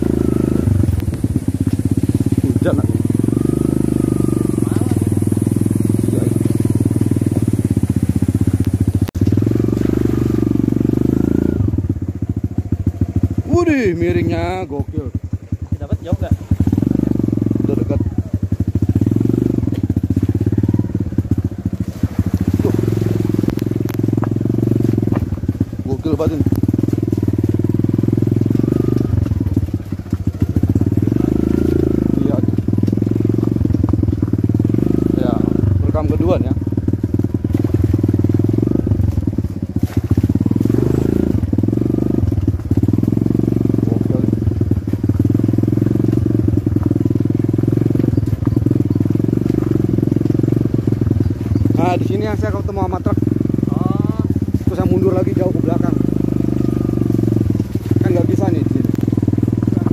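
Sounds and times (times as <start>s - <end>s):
engine running at low revs: 0.0s - 59.9s.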